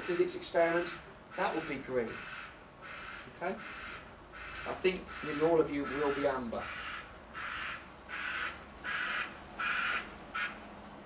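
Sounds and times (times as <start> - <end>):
bird harsh calls: 0.7 - 10.6.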